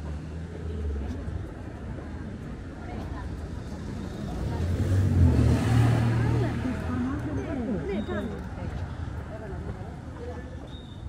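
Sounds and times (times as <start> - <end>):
people talking: 0.5 - 10.8
car driving past: 3.8 - 7.8.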